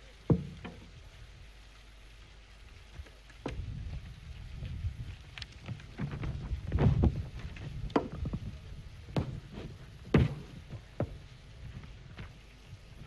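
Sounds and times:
low rumble with small knocks: 2.8 - 13.0
sharp thump: 10.1 - 11.1.

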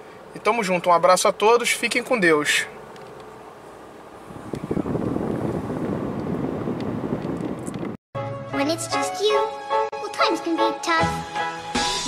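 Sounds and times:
air conditioning air rushing: 0.0 - 8.0.

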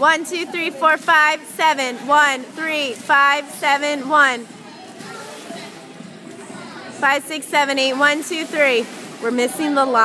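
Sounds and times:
faint voices: 0.0 - 10.0
swimmers splashing in indoor pool: 0.0 - 10.0.

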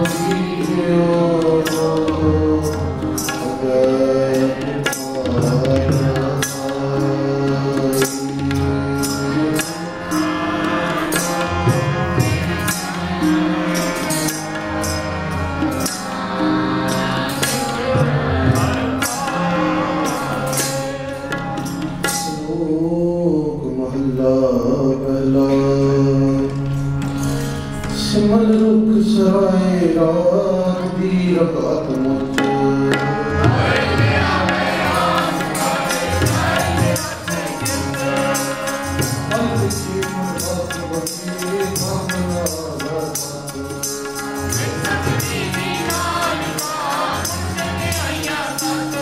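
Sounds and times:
man singing: 0.0 - 14.0, 22.2 - 26.6, 27.9 - 49.0
tabla drums: 0.0 - 23.1, 31.4 - 49.0
harmonium playing: 0.0 - 23.9, 24.7 - 49.0.

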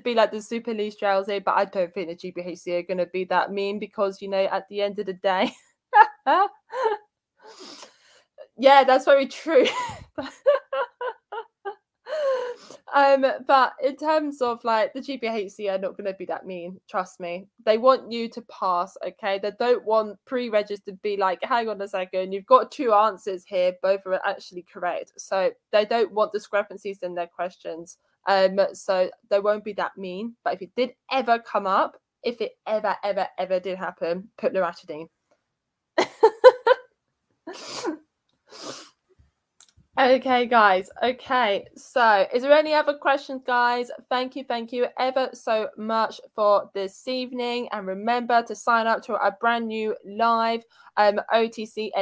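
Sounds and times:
woman laughing: 5.4 - 7.0, 9.3 - 12.6, 36.0 - 36.9.

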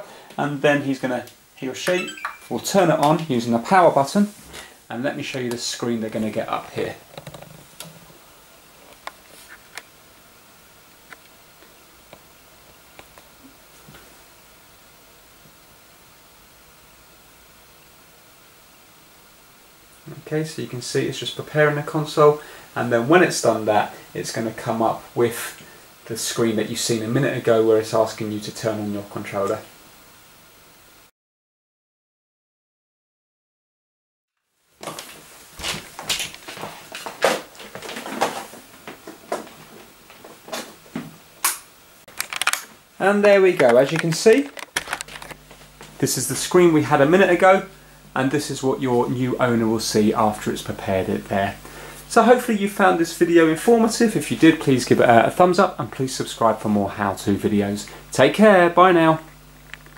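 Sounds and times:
faint steady hiss: 0.0 - 31.1, 34.4 - 59.9.

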